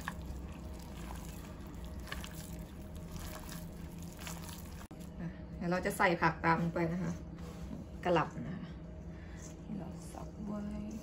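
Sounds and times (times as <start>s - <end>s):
wet squelching of kneaded meat: 0.0s - 5.1s
steady low hum: 0.0s - 11.0s.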